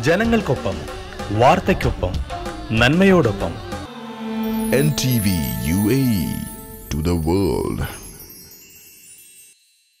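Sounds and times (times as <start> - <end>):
high ringing jingle shimmer: 4.2 - 10.0.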